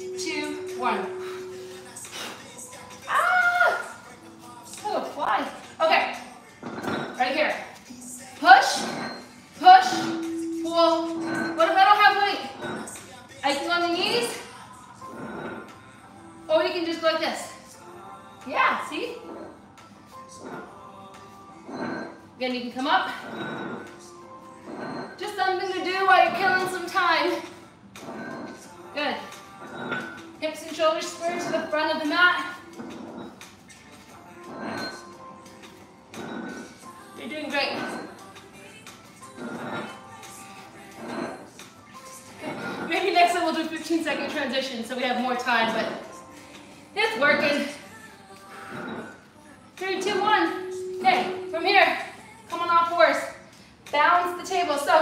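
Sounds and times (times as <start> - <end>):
soft background music: 0.0 - 55.0
dumbbells sliding across floor: 12.5 - 13.0, 15.0 - 15.8, 19.2 - 20.8, 23.1 - 24.0, 24.6 - 25.2, 28.0 - 28.6, 29.6 - 30.2, 32.7 - 33.4, 34.4 - 35.1, 36.2 - 36.8, 39.2 - 41.5, 42.3 - 43.4, 48.4 - 49.2.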